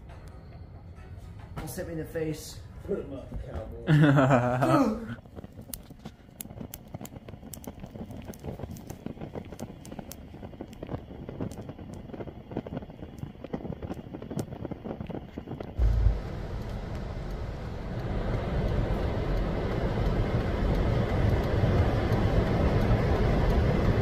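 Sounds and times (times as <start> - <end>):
gas fire ticking and crackling: 0.0 - 24.0
road traffic rumble inside car: 15.8 - 24.0.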